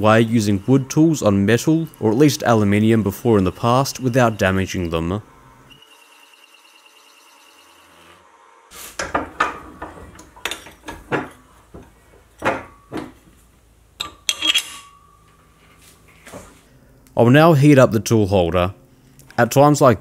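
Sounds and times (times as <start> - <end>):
mill whine: 0.0 - 17.1
faint metallic ringing: 14.0 - 16.6.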